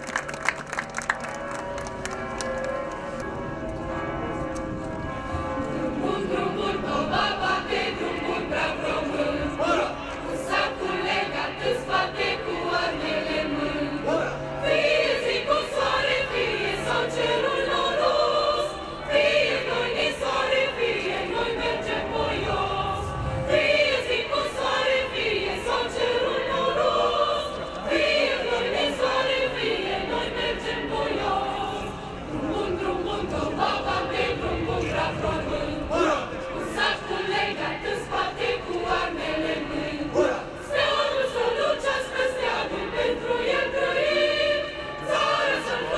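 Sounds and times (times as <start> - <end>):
mixed choir singing: 5.2 - 45.9.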